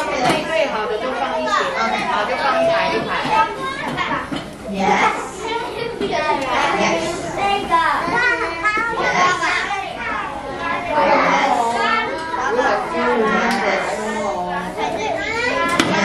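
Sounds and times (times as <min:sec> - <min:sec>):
children chattering: 0:00.0 - 0:16.0.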